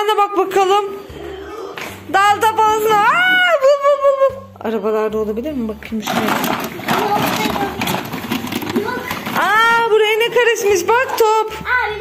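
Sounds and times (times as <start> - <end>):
plastic toys clattering: 5.9 - 11.2.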